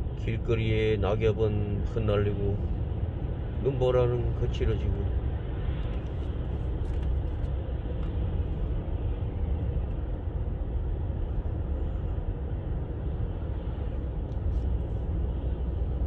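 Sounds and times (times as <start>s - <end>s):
car driving on wet road: 1.2s - 16.0s.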